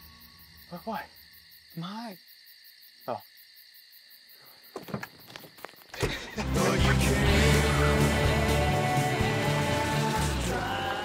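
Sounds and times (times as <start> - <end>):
night insects chirring: 0.0 - 11.0.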